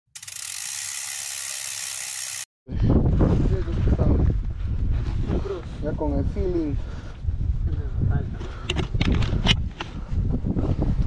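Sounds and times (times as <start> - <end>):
high-pitched mechanical ratcheting buzz: 0.1 - 2.5.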